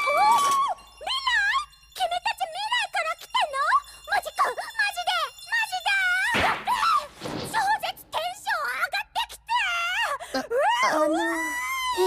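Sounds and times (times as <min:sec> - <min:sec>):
girl speaking excitedly: 0:02.0 - 0:10.2.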